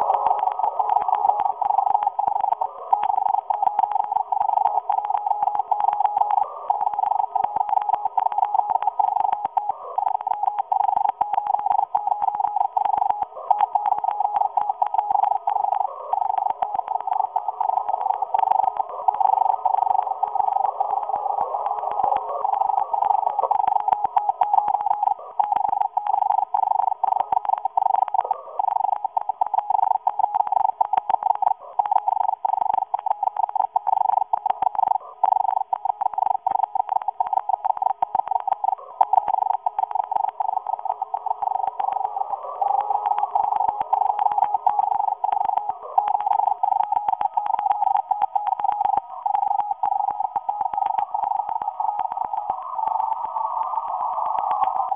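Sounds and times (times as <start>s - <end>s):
faint static hiss: 0.0s - 54.9s.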